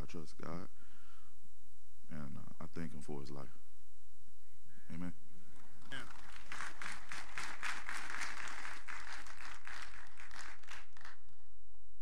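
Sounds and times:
audience applauding: 5.5 - 11.4.

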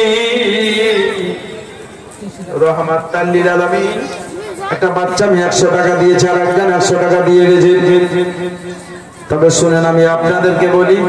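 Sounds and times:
man preaching in chanting voice: 0.0 - 1.7, 2.3 - 11.0.

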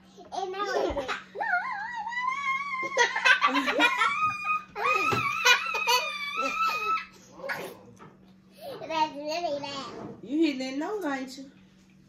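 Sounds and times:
girl squealing laughter: 1.3 - 7.1.

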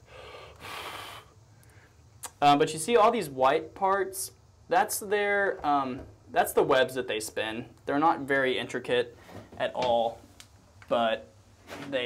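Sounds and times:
man breathing: 0.0 - 2.1.

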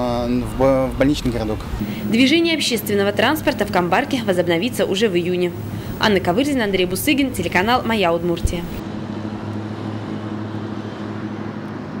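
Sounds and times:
car engines humming: 0.0 - 12.0.

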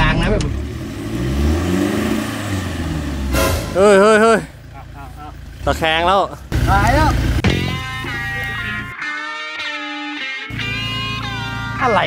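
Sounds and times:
pickup truck engine droning: 0.0 - 9.2, 10.0 - 12.0
sharp burst of noise: 3.3 - 4.2
man shouting: 3.8 - 5.0.

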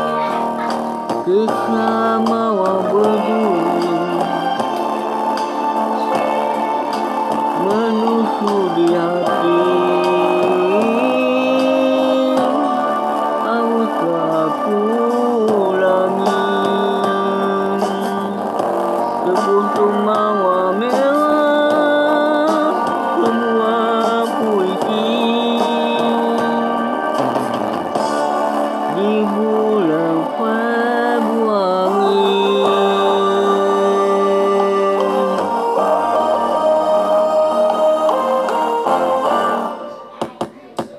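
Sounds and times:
person singing: 0.0 - 40.9.

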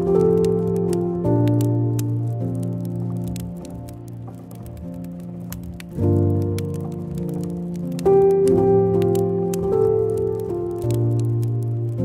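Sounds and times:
burning wood crackling: 0.0 - 12.0
soft instrumental music: 0.0 - 12.0.

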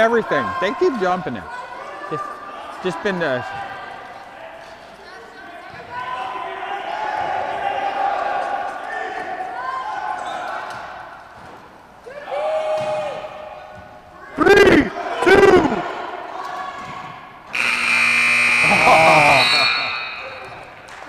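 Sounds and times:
players shouting: 12.0 - 16.9, 17.5 - 20.8
scoreboard buzzer: 17.5 - 20.5.

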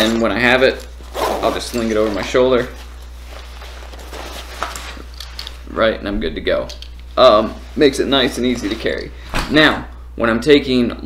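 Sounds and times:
fabric strap rustling: 0.0 - 5.6
steady low hum: 0.0 - 11.0.

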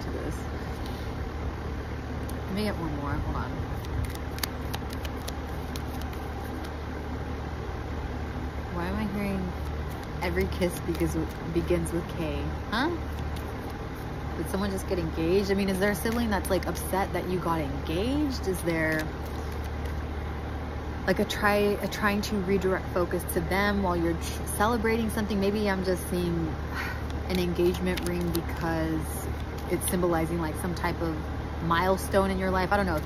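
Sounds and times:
low traffic rumble: 0.0 - 33.0
cards being shuffled: 3.7 - 6.8, 9.4 - 12.1, 13.0 - 14.8, 15.4 - 16.8, 18.2 - 20.0, 27.0 - 30.0
person speaking: 8.7 - 13.7, 14.3 - 19.6, 27.1 - 33.0.

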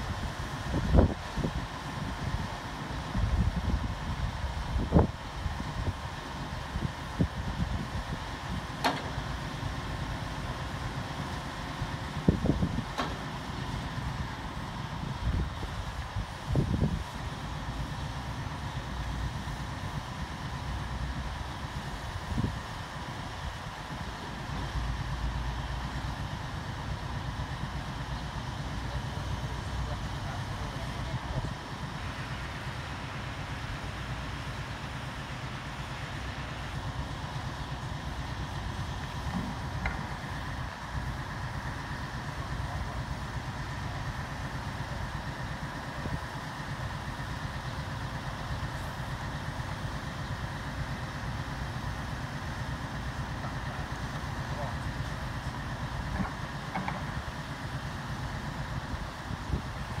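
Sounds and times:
diesel engine running: 0.0 - 60.0.

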